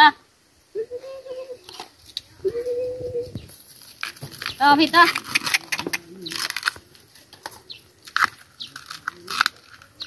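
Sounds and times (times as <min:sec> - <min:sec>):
bamboo husks crackling and tearing: 0:03.6 - 0:10.0.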